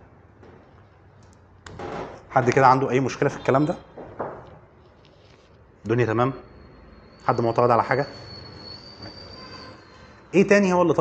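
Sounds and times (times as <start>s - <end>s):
high-pitched whine: 5.9s - 11.0s.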